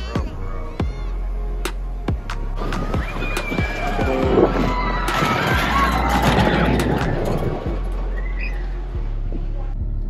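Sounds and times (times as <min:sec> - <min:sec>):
background music: 0:00.0 - 0:10.0
riders screaming: 0:02.6 - 0:07.5.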